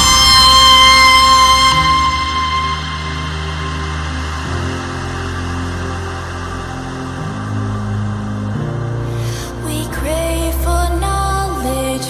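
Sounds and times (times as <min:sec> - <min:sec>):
low synth chords: 0:00.0 - 0:12.0.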